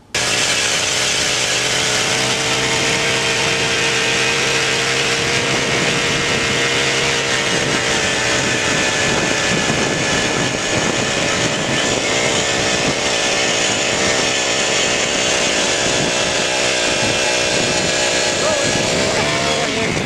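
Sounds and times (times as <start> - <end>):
ice auger engine running: 0.0 - 20.0.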